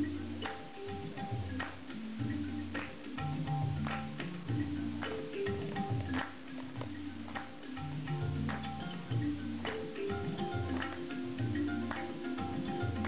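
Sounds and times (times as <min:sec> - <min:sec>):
plucked kora and mbira notes: 0:00.0 - 0:13.0
tabla drumming: 0:00.0 - 0:13.0.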